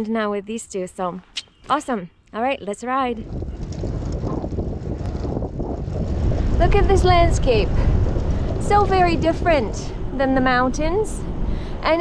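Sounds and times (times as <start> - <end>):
tyre road noise: 1.2 - 12.0
wind on microphone: 2.6 - 12.0.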